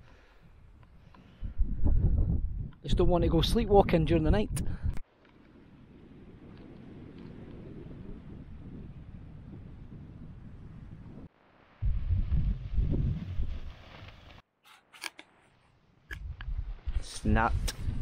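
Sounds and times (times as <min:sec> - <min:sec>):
wind rumbling on microphone: 0:00.4 - 0:14.4, 0:16.1 - 0:18.0.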